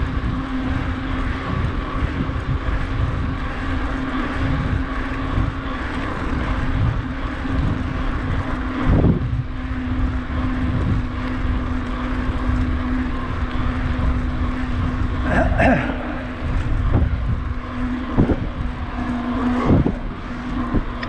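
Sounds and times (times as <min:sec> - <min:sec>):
bike tyres rolling on tarmac: 0:00.0 - 0:21.0
steady low hum: 0:00.0 - 0:21.0
wind rushing over microphone: 0:00.0 - 0:21.0.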